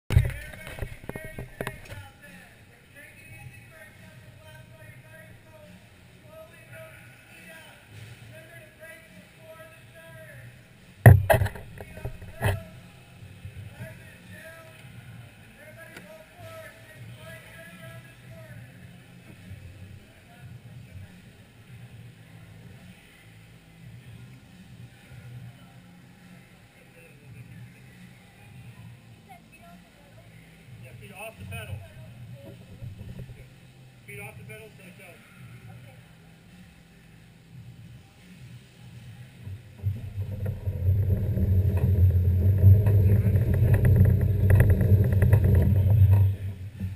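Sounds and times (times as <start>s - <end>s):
sharp knocks: 11.1s - 12.6s
low steady hum: 38.7s - 46.9s
distant voices talking: 39.2s - 46.9s.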